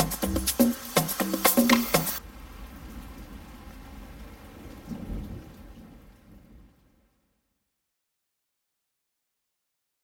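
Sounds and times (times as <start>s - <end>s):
rain: 0.0s - 7.8s
thunder rumble: 2.2s - 7.4s.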